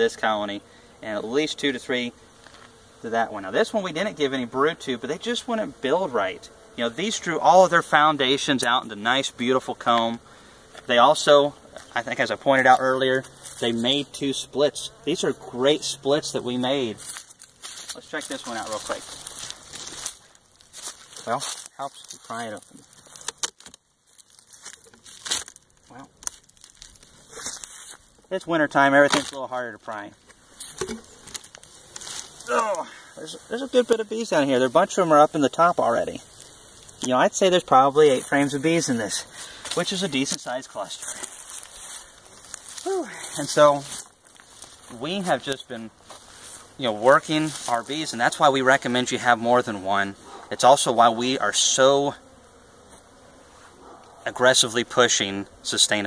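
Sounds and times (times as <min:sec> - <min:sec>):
honeybees buzzing: 0:00.0 - 0:56.0
hive tool prying clicks and crackles: 0:19.3 - 0:28.3, 0:29.0 - 0:29.4, 0:30.2 - 0:32.4.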